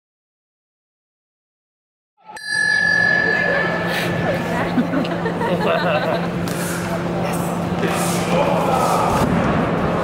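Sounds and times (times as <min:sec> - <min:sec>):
arena hall noise: 0:02.2 - 0:10.0
ring bell strike: 0:02.3 - 0:04.6.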